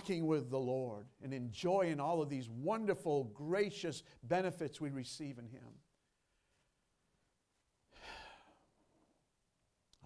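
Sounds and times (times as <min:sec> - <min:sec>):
man sighing breath: 0:07.9 - 0:08.9.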